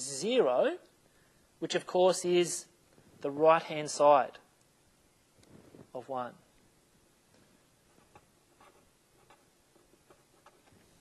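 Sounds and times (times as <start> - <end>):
pen scratching on paper: 7.9 - 10.8.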